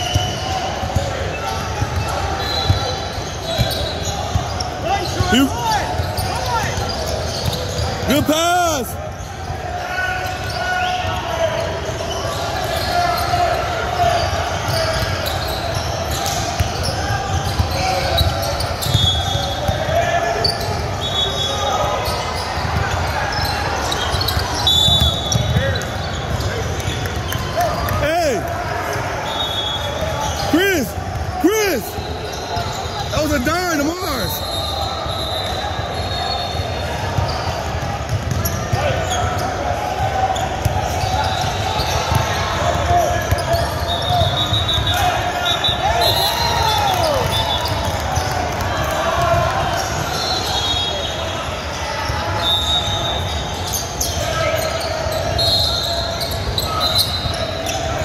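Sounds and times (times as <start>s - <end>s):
sneaker squeaks: 0.0s - 48.6s, 49.3s - 58.0s.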